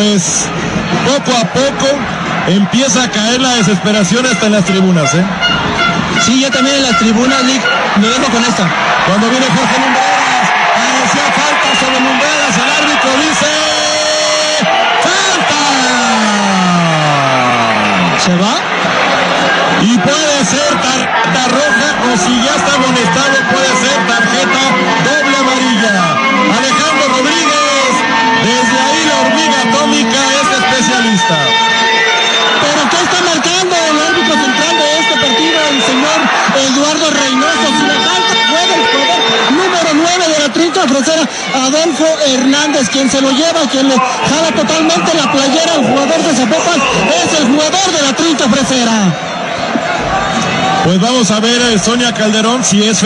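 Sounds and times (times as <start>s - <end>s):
man commentating excitedly: 0.0s - 5.4s, 6.1s - 18.8s, 19.7s - 31.6s, 32.4s - 49.2s, 49.8s - 53.0s
stadium crowd noise: 0.0s - 53.0s
voices talking: 19.6s - 53.0s.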